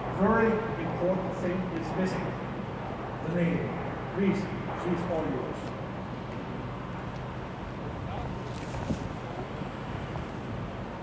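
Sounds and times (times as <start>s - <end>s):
faint indistinct voices: 7.8s - 10.1s
wind on microphone rumble: 7.8s - 11.0s.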